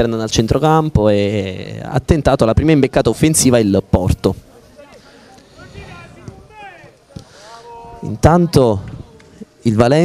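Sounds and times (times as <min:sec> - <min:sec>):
distant players shouting: 0:04.5 - 0:09.6.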